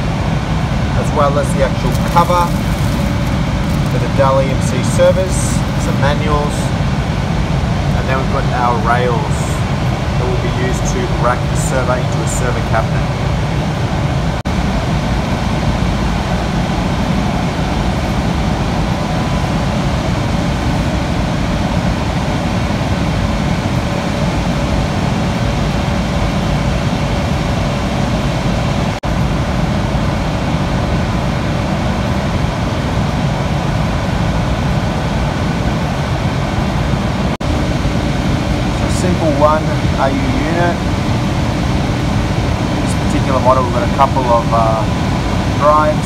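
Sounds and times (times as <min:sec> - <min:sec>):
faint high whine: 0:00.0 - 0:33.4, 0:34.0 - 0:46.0
cooling fans whirring: 0:00.0 - 0:46.0.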